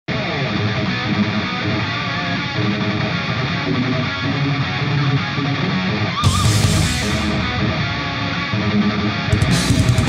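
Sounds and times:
rock music with electric guitar: 0.1 - 10.0.

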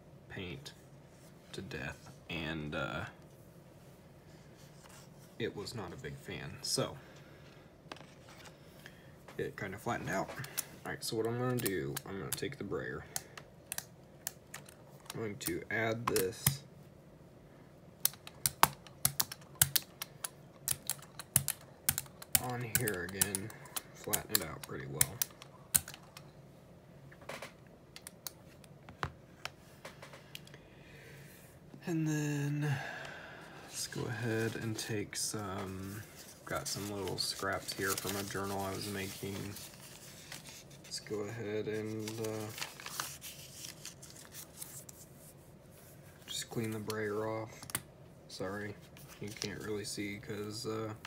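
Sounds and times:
paper rustling and rubbing: 33.8 - 45.9.

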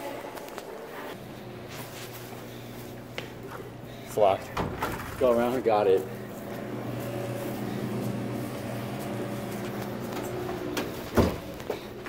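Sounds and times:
low machine hum: 1.1 - 12.0.

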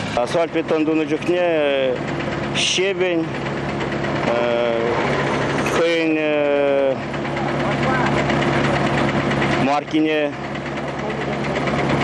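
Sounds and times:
machinery engine idling: 0.0 - 12.0.

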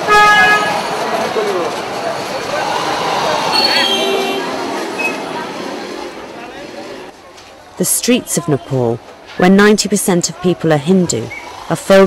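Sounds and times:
crowd of voices: 0.0 - 12.0
traffic: 0.0 - 12.0.

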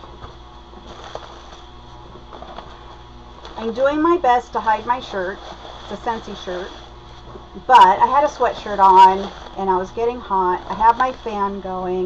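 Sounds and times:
electric fan humming: 0.0 - 12.0
packing peanuts rustling: 0.0 - 12.0.

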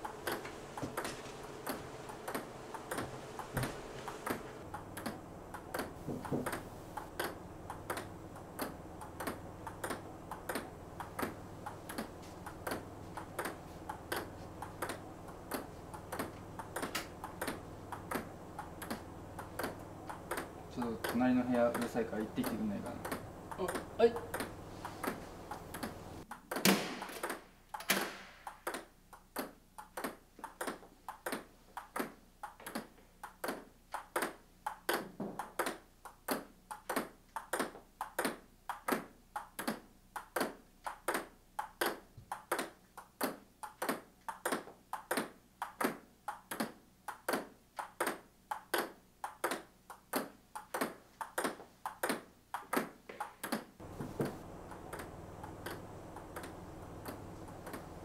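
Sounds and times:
low steady hum: 0.0 - 30.4, 53.8 - 58.0
table tennis ball clicking: 4.3 - 53.7.

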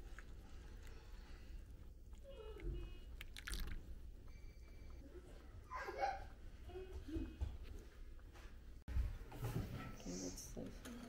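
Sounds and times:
hot water pouring into mug: 3.2 - 3.9.

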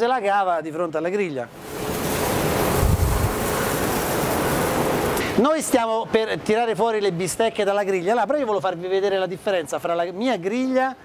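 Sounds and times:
steak sizzling on a grill: 1.6 - 5.4.

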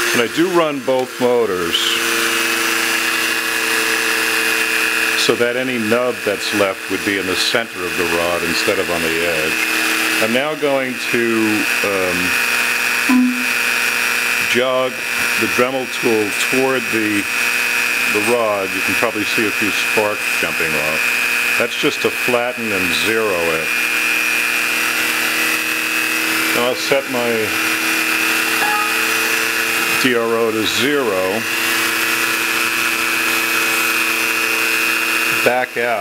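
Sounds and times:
rotary tool high whine: 0.0 - 5.2, 6.2 - 14.4, 16.1 - 36.0
lathe spindle running: 21.0 - 21.6, 23.7 - 30.1, 31.4 - 35.4.

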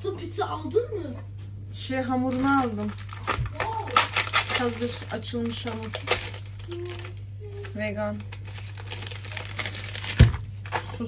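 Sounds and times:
steady low hum: 0.0 - 11.0
baking paper crinkling: 2.2 - 11.0.

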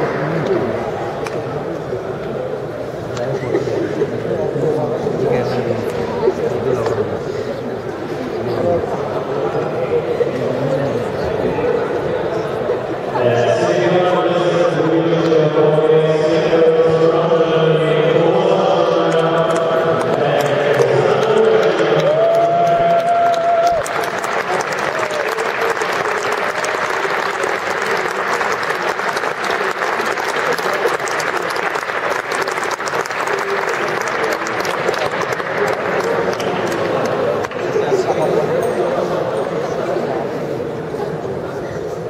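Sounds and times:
audience applause: 19.5 - 38.0.

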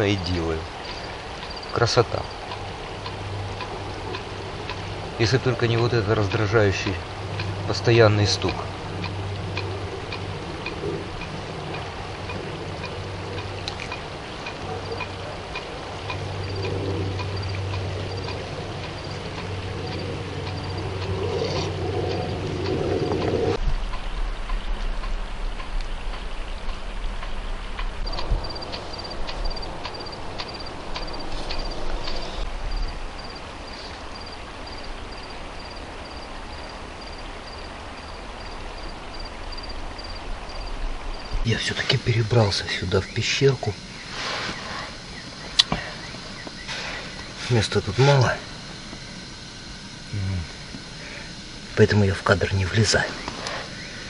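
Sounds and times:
steady rushing noise: 0.0 - 54.0.

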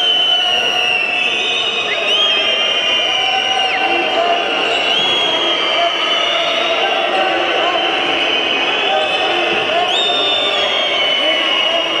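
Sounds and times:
crowd noise in a gym: 0.0 - 12.0.

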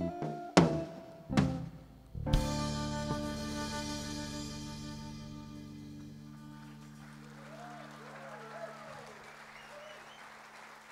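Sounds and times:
audience applauding: 6.4 - 10.9
voices cheering: 6.6 - 10.9.

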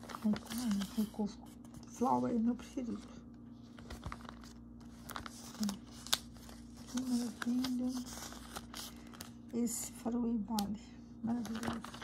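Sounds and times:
paper pages rustling: 0.0 - 9.4, 11.3 - 12.0.

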